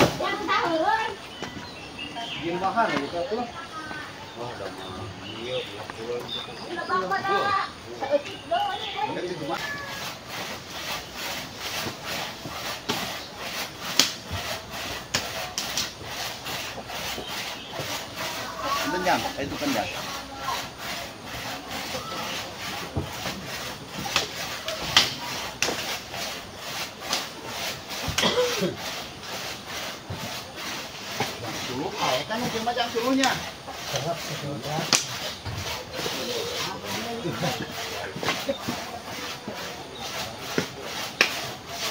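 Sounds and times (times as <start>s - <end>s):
handsaw cutting wood: 9.1s - 41.9s.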